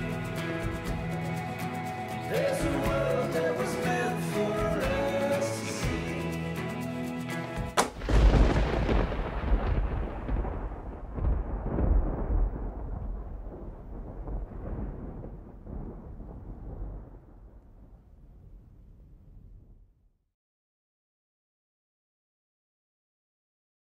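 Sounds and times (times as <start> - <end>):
song playing: 0.0 - 7.9
deep rolling boom: 7.8 - 19.9.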